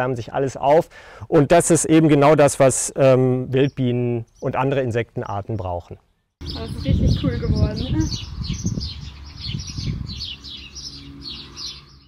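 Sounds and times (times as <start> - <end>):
songbirds chirping: 1.9 - 12.0.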